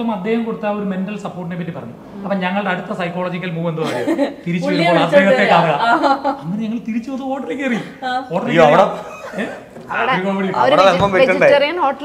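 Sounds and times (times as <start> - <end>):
conversational speech: 0.0 - 12.0
chuckling laughter: 9.0 - 9.7.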